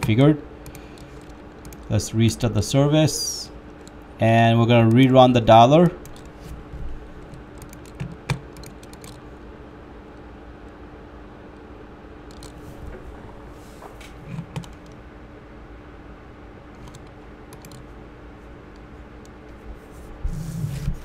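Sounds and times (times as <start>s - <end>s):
computer mouse and keyboard clicks: 0.0s - 1.9s, 6.0s - 6.4s, 7.2s - 9.2s, 12.3s - 12.7s, 14.0s - 15.0s, 16.8s - 17.9s
steady low hum: 0.0s - 21.0s.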